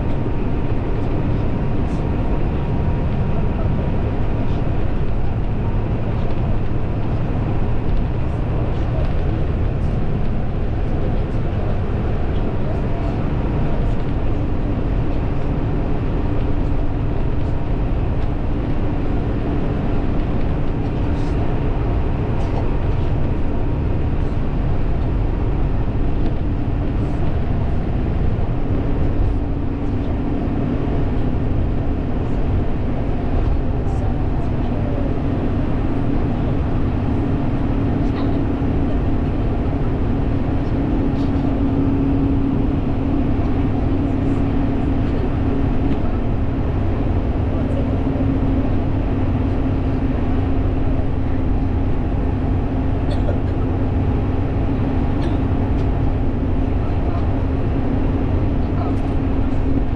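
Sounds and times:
low engine hum: 0:00.0 - 0:59.9.

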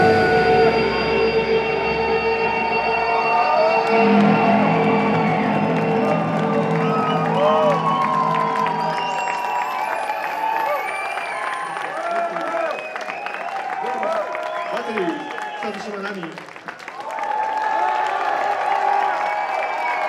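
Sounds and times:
rock band drone: 0:00.0 - 0:12.3
audience cheering and clapping: 0:00.0 - 0:20.0.

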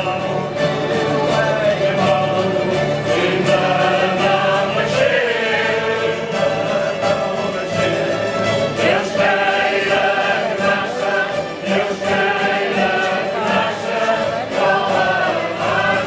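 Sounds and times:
cavaquinhos strummed: 0:00.0 - 0:16.0
group singing: 0:00.0 - 0:16.0.

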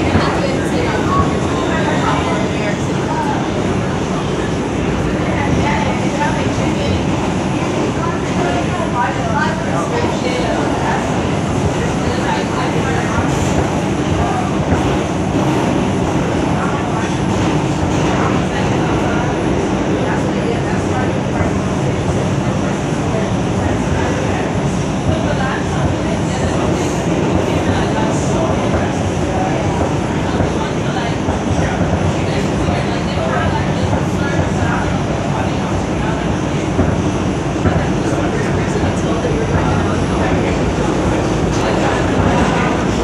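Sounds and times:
subway train wheels rumbling: 0:00.0 - 0:43.0.

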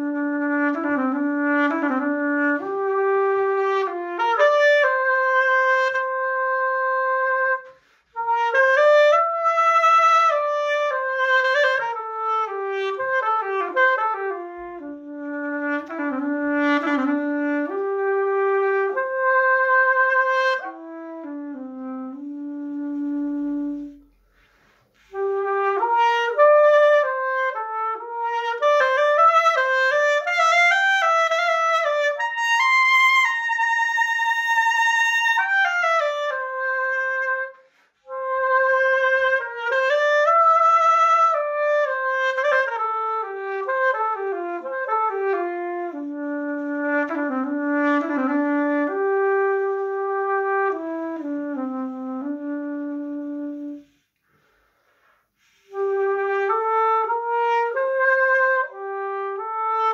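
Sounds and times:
reed pipe solo melody: 0:00.0 - 0:54.1, 0:55.4 - 0:59.9.

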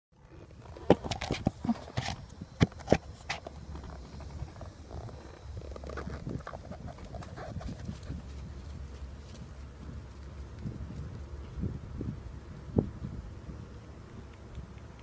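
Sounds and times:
low steady rumble: 0:00.2 - 0:15.0.

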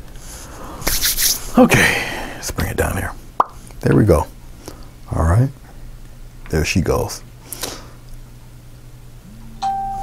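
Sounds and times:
low steady hum: 0:00.0 - 0:10.0
electronic tone: 0:09.2 - 0:10.0.

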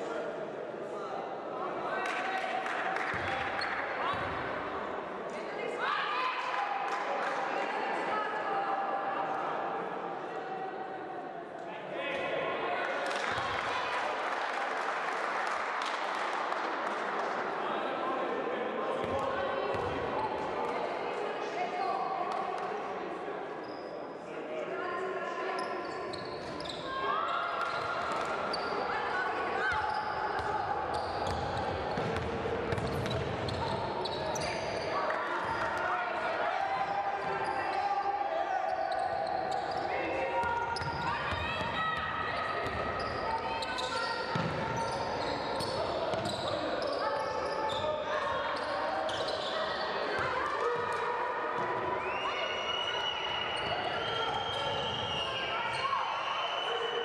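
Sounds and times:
basketball bouncing on wooden court: 0:31.2 - 0:33.6, 0:44.3 - 0:44.6.

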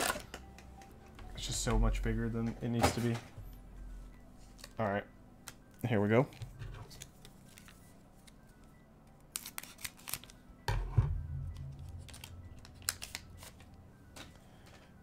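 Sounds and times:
cards rustling: 0:06.9 - 0:08.6, 0:09.2 - 0:10.4, 0:11.7 - 0:15.0
foil pack crinkling and tearing: 0:09.3 - 0:10.4, 0:12.0 - 0:13.6.

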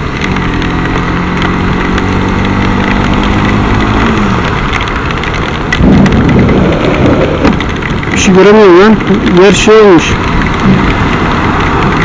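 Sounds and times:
faint motorcycle engine: 0:00.0 - 0:12.0
heavy rain: 0:00.0 - 0:12.0
tyre spray on wet road: 0:00.0 - 0:12.0
wind rushing: 0:05.5 - 0:08.8.

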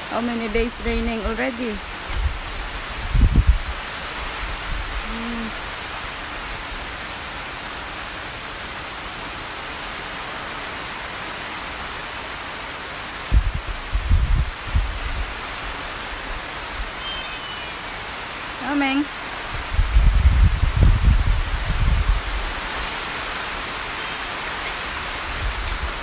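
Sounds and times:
heavy rain on trees: 0:00.0 - 0:26.0
low rumbles on microphone: 0:02.1 - 0:03.8, 0:13.3 - 0:15.3, 0:19.5 - 0:22.6.

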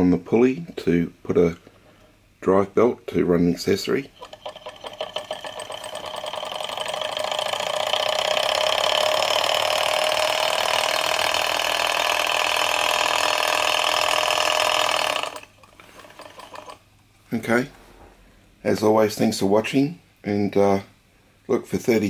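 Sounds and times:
stirling engine running: 0:04.2 - 0:16.8.

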